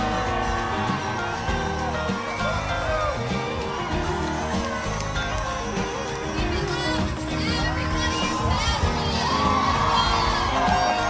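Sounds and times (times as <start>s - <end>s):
crowd cheering and shouting: 0.0s - 11.0s
high yells: 0.0s - 11.0s.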